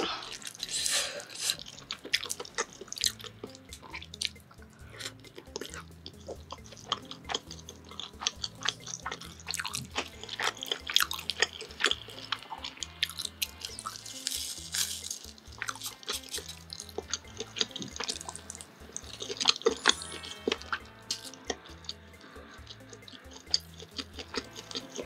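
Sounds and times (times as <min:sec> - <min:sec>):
chewing with wet mouth clicks: 0:00.0 - 0:00.8, 0:01.4 - 0:25.0
packet tearing open: 0:13.9 - 0:16.6.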